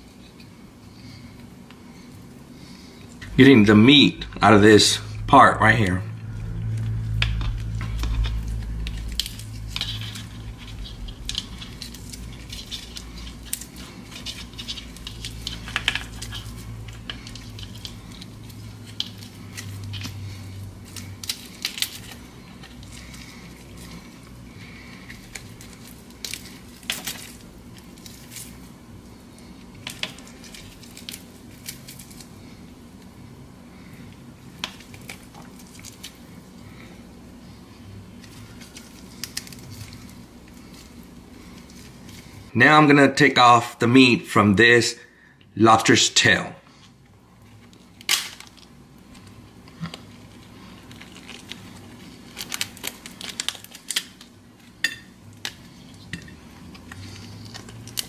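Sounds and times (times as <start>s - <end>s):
low hum: 1.9s - 34.4s
meat squishing: 6.6s - 33.3s, 33.9s - 36.5s, 37.8s - 42.5s, 47.4s - 58.0s
crab shell cracking: 9.2s - 20.2s, 20.8s - 28.6s, 38.2s - 41.0s, 47.6s - 58.0s.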